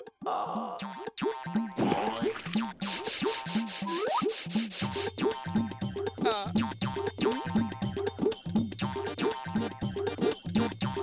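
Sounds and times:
bouncy cartoon music: 0.0 - 11.0.

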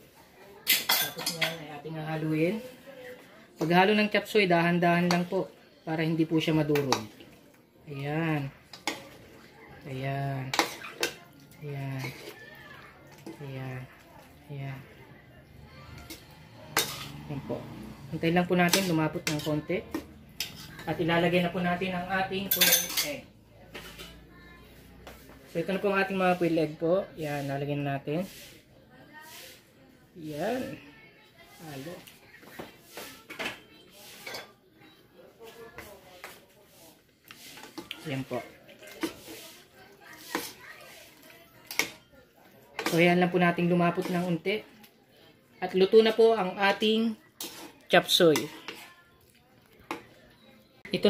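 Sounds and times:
food rustling: 0.0 - 28.6, 29.2 - 51.0
metal spoon stirring in wok: 0.0 - 30.4, 31.4 - 51.0
spoon clanking on wok: 22.4 - 23.2.

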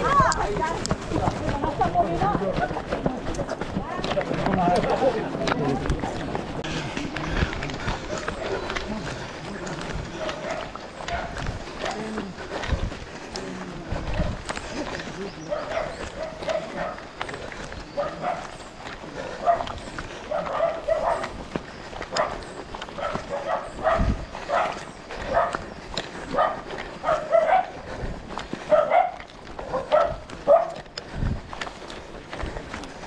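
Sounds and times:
runners' footsteps on road: 0.0 - 33.0
dog barking: 10.2 - 12.0, 15.5 - 17.1, 18.0 - 18.6, 19.4 - 21.4, 22.1 - 22.4, 23.0 - 25.6, 26.3 - 27.8, 28.7 - 30.8.

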